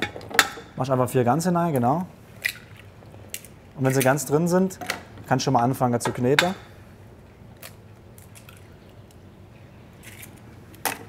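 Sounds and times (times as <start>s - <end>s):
eggshells cracking: 7.5s - 9.2s.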